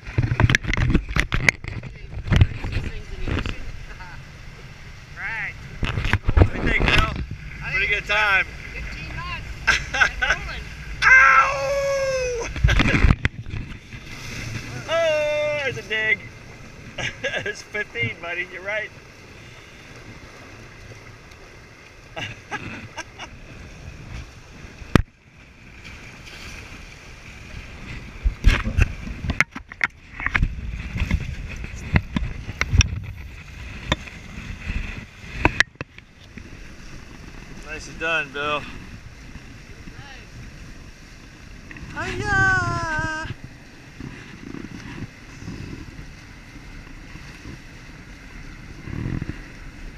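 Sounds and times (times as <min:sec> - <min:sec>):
wind buffeting microphone: 0:00.0 - 0:18.2, 0:18.9 - 0:49.9
rushing water: 0:00.0 - 0:49.9
rushing wind: 0:00.0 - 0:49.9
man whooping: 0:11.0 - 0:12.6, 0:14.8 - 0:15.7, 0:42.0 - 0:43.3.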